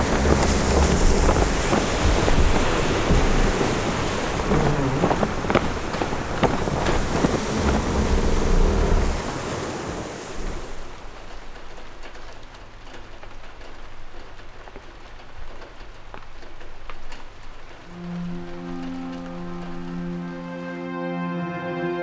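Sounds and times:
music with held low notes: 0.0 - 3.6, 17.9 - 22.0
deep thunder rumble: 0.0 - 11.8
heavy rain: 0.0 - 22.0.

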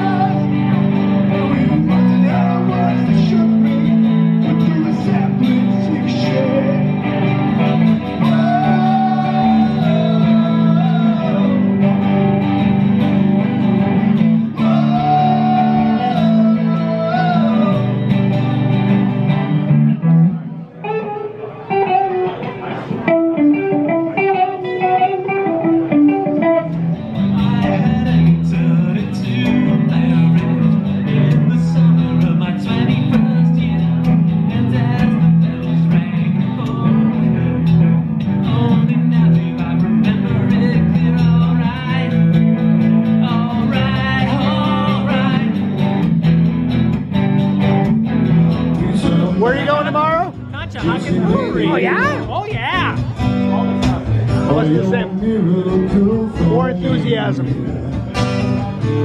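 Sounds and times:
acoustic and electric guitar duo: 0.0 - 59.0.

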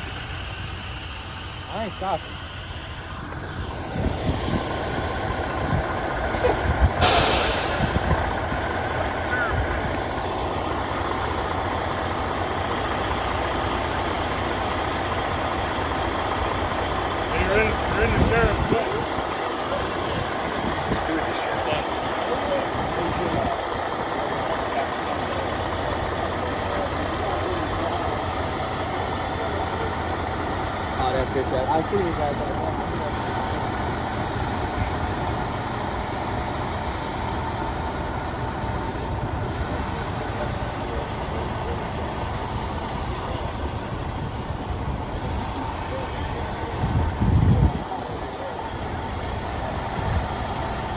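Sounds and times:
diesel truck engine rumbling: 0.0 - 50.9
loud hiss: 6.3 - 8.2.

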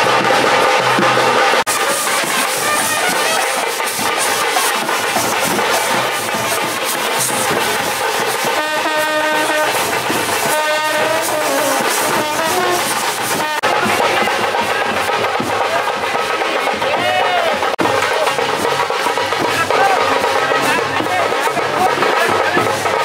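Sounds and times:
brass band playing: 0.0 - 14.2
drums: 0.0 - 23.0.

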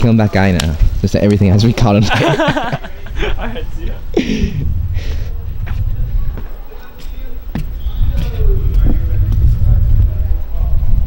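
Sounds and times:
rolling on paved path: 0.0 - 11.0
wind buffeting microphone: 0.0 - 11.0.

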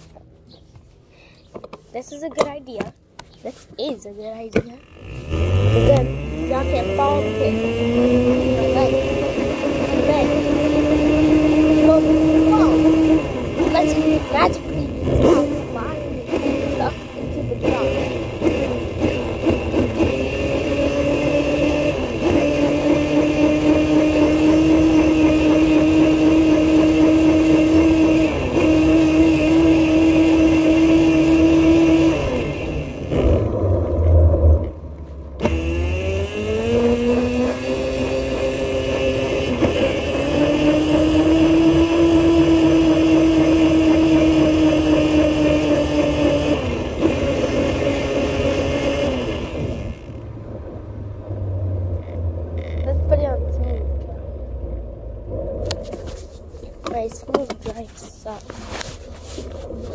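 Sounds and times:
ride-on vehicle motor whine: 4.6 - 59.9.

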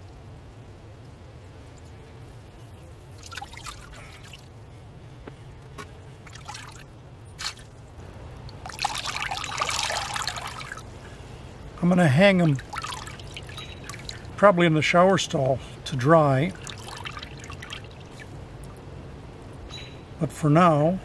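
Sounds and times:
water dripping into a tub: 3.2 - 4.5, 6.2 - 7.7, 8.4 - 10.9, 12.4 - 14.4, 16.4 - 18.8.

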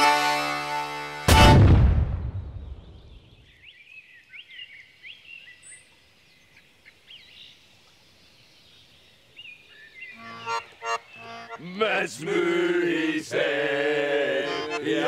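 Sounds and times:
cannon shot rumble: 1.3 - 3.0.

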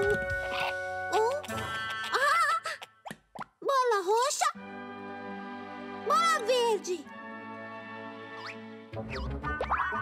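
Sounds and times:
gentle children's music: 0.0 - 2.7, 3.7 - 10.0.

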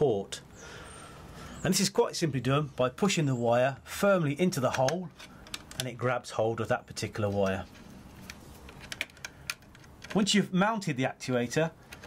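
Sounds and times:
plastic clicks of wire in terminal: 4.6 - 6.0, 8.2 - 10.3.

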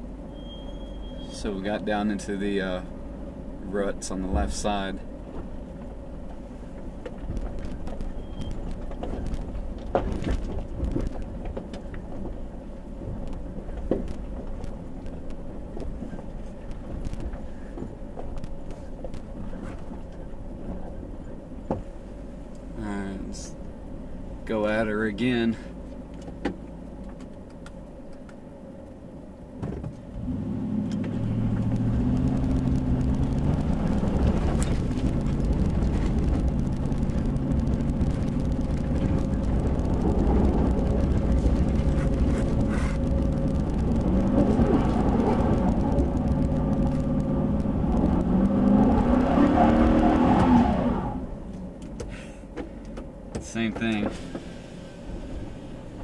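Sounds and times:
truck engine revving: 30.2 - 51.7.

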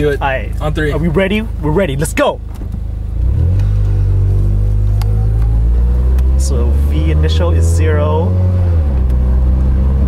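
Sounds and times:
car engine accelerating: 0.1 - 10.0.

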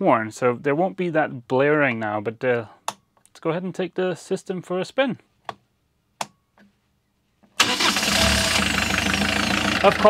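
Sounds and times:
diesel engine starting and running: 7.6 - 10.0.

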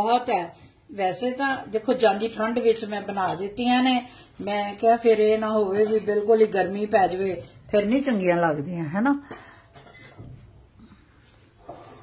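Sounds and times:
crockery and cutlery clinking: 9.2 - 10.6.

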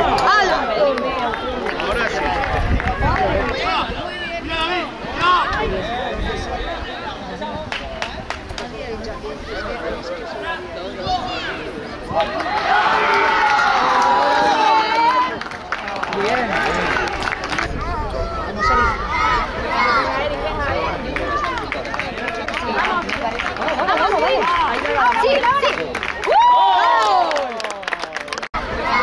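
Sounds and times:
spectators shouting: 10.9 - 15.6, 16.2 - 27.8, 28.6 - 29.0.

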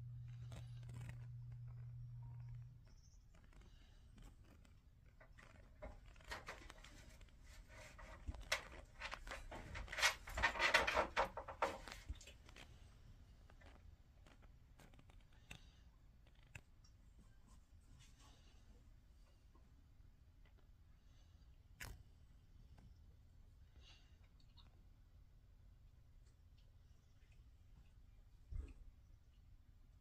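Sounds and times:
steady low hum: 0.0 - 10.9.

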